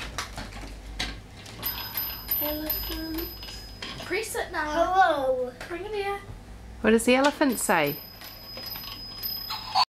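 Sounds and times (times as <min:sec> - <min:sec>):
plastic toys clicking and rattling: 0:00.1 - 0:04.0, 0:07.2 - 0:09.8.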